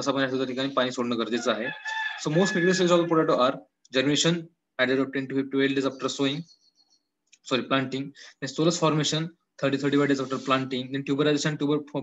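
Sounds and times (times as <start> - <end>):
man speaking: 0.0 - 6.5, 7.5 - 12.0.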